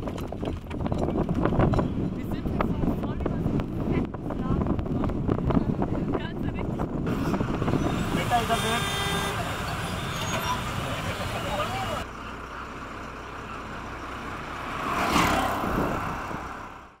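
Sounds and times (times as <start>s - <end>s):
busy street traffic: 0.0s - 17.0s
auto-rickshaw engine passing: 7.0s - 17.0s.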